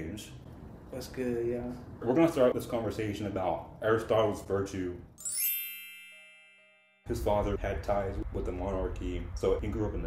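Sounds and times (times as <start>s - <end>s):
bell-like chime sweep: 5.2s - 7.6s.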